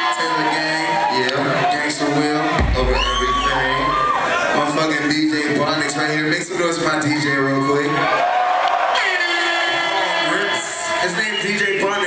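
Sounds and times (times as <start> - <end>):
crowd cheering and shouting: 0.0 - 12.0
deep bass boom: 2.6 - 4.2.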